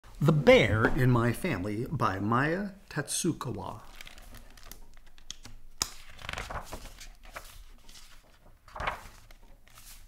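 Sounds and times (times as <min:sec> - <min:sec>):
book pages turning: 0:03.7 - 0:10.0
paper snap: 0:03.9 - 0:07.0, 0:08.8 - 0:09.3.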